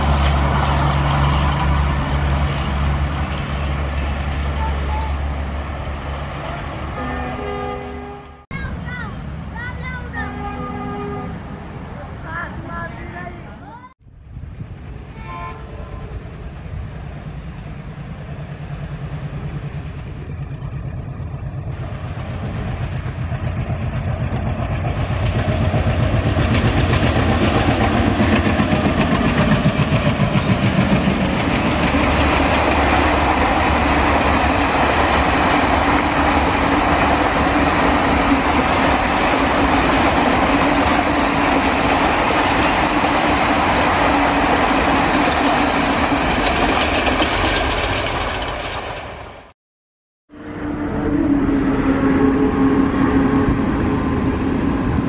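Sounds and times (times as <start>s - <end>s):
train coaches rolling rumble: 0.0s - 49.5s, 50.4s - 55.0s
locomotive low pulsing drone: 14.1s - 49.4s, 50.3s - 55.0s
wheels clacking over rail joints: 17.9s - 49.5s.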